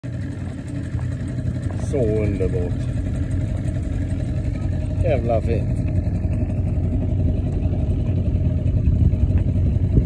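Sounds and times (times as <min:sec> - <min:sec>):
motorboat engine rumbling: 0:00.0 - 0:10.0.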